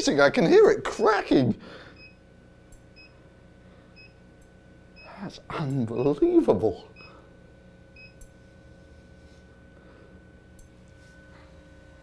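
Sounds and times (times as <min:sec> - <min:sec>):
steady faint hum: 0:00.0 - 0:12.0.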